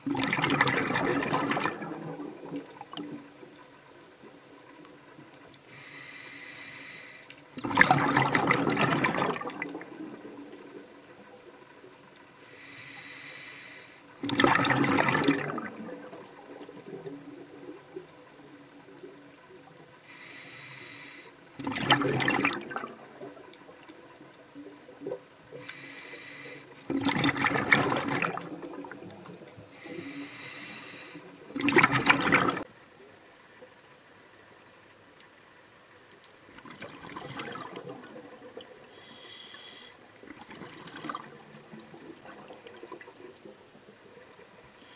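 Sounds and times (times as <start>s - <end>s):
exhaled bubbles rushing: 0.0s - 3.4s, 7.6s - 11.4s, 14.2s - 18.1s, 21.6s - 25.2s, 26.8s - 29.5s, 31.4s - 32.7s, 36.5s - 38.9s, 40.2s - 44.4s
diver inhaling through regulator: 5.7s - 7.3s, 12.4s - 14.1s, 20.0s - 21.4s, 25.5s - 26.8s, 29.7s - 31.3s, 38.9s - 40.0s.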